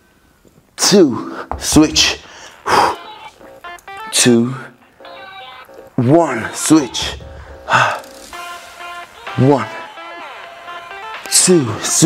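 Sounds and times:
background music with sustained tones: 3.0s - 12.0s.

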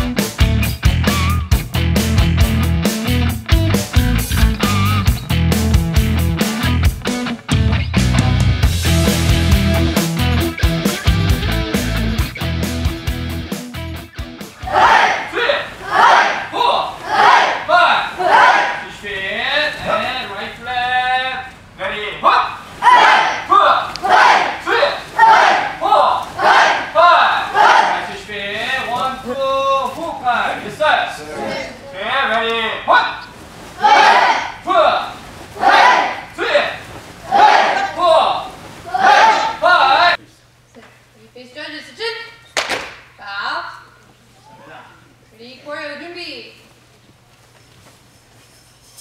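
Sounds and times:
students shouting together: 14.6s - 18.9s, 22.8s - 28.2s, 33.8s - 40.1s.

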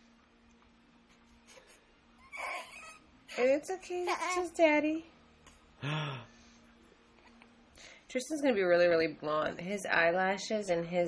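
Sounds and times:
baby fussy cry: 2.2s - 3.0s.

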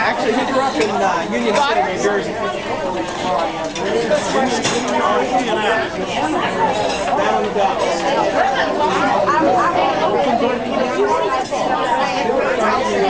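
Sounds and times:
many people chattering: 0.0s - 13.0s.

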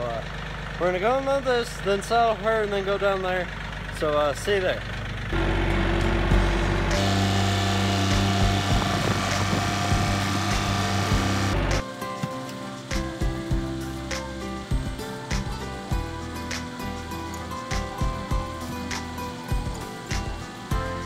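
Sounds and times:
tractor engine running: 0.0s - 21.0s
background music with beats: 6.0s - 21.0s.

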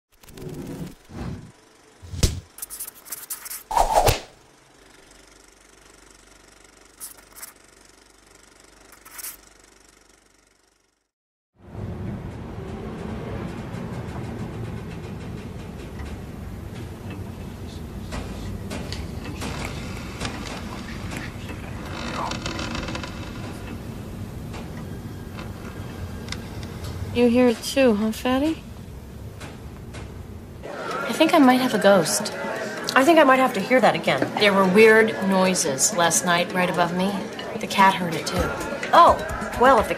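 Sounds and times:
sharp hits and swishes: 0.2s - 4.4s
faint scrapes and rattles: 8.8s - 9.5s.

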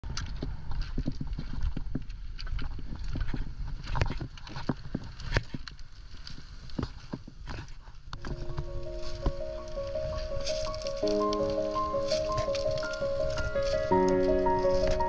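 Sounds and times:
footsteps crunching on pebbles: 0.2s - 15.0s.

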